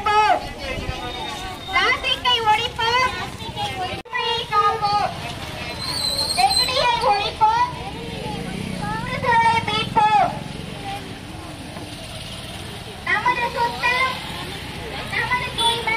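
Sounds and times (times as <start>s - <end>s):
vehicle engine humming: 1.3s - 15.9s.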